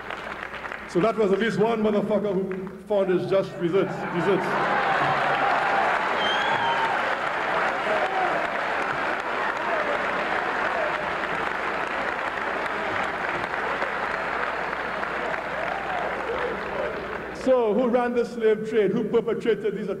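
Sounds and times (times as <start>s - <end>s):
audience applauding: 0.0s - 1.5s, 4.0s - 17.8s.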